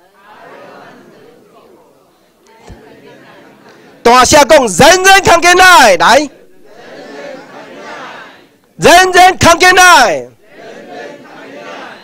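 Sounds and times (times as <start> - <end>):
murmur of audience voices: 0.0 - 4.8, 6.1 - 8.8, 10.0 - 12.0.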